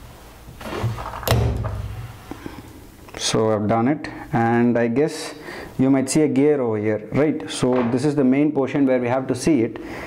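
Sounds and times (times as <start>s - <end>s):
handling thuds: 0.6s - 2.3s.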